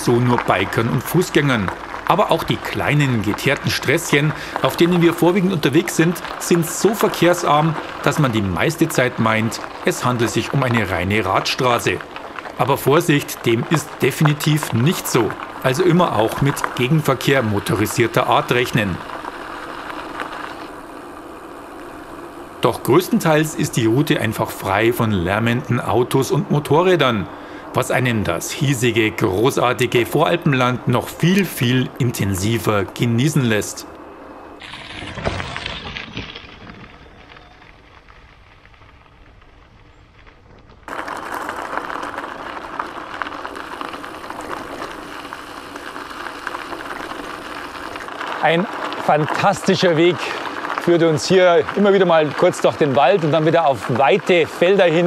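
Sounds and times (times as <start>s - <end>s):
bike tyres rolling on gravel: 0.0s - 55.0s.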